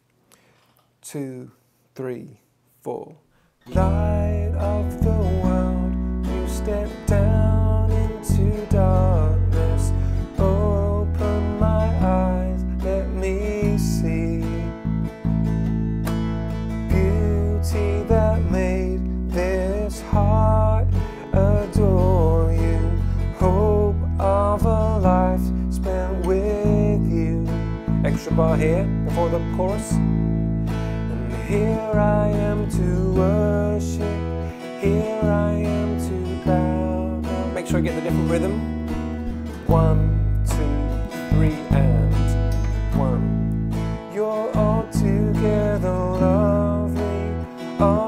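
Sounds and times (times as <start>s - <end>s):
strummed acoustic guitar: 3.6s - 48.0s
bass guitar notes: 3.7s - 48.0s.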